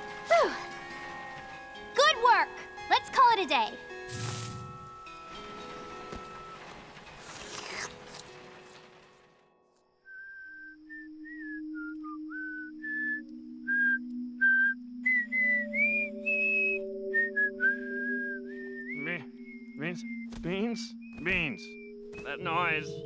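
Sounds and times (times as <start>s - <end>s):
person whistling a slow tune: 10.0s - 20.4s.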